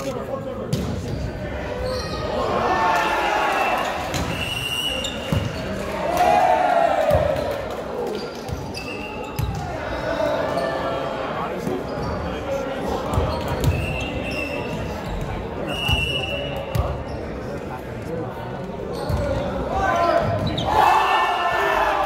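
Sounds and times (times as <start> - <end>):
players shouting: 1.7 - 8.1, 19.7 - 22.0
sneakers squeaking on court: 4.0 - 5.8, 8.1 - 9.7, 13.1 - 15.5, 18.9 - 19.6.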